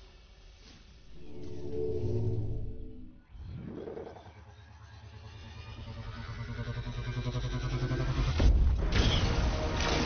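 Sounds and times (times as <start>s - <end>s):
low pulsing rumble: 1.1s - 3.3s.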